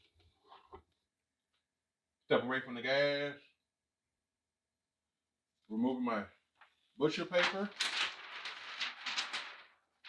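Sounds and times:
paper rustling and crinkling: 6.6s - 10.0s.

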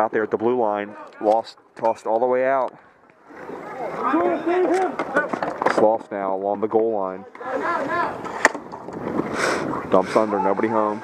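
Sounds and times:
murmur of voices: 3.2s - 5.7s, 7.1s - 8.5s.

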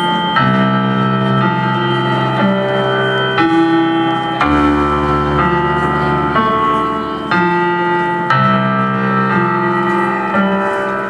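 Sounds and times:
electric keyboard chords: 0.0s - 11.0s.

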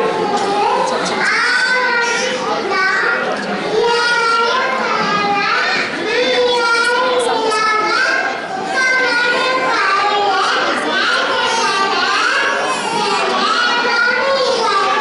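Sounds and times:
children speaking into microphones: 0.0s - 15.0s.

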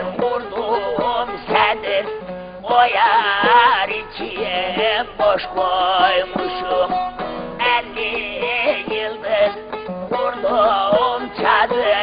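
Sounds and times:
man singing: 0.0s - 12.0s
plucked long-necked lute: 0.0s - 12.0s.

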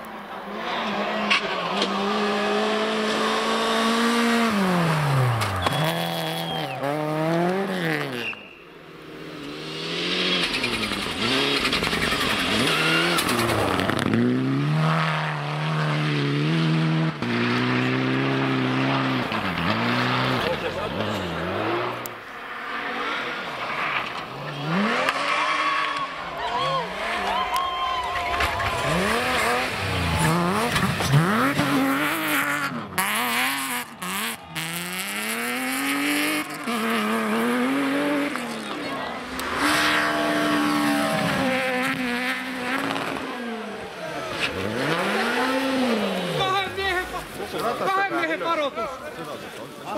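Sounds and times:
rally car engines revving hard: 0.3s - 27.4s, 28.3s - 49.9s.

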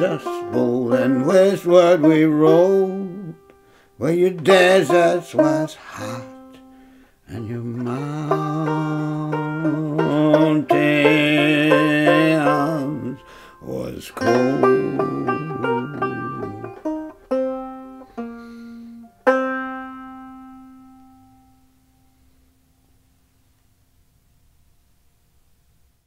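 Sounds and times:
man singing: 0.0s - 3.4s, 4.0s - 6.7s, 7.3s - 17.1s
banjo playing: 0.0s - 22.3s.

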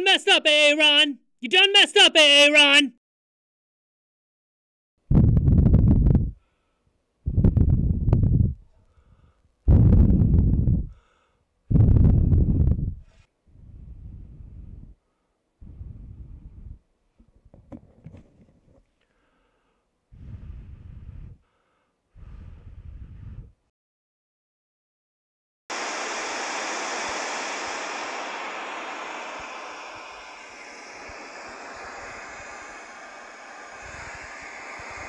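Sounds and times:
breath wind noise on microphone: 5.1s - 16.9s, 19.1s - 23.7s, 29.1s - 35.0s.

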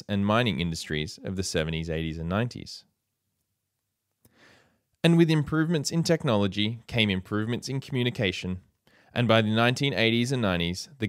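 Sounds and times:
narrator speaking: 0.0s - 2.9s, 5.0s - 11.0s
faint intake of breath: 4.2s - 4.9s.

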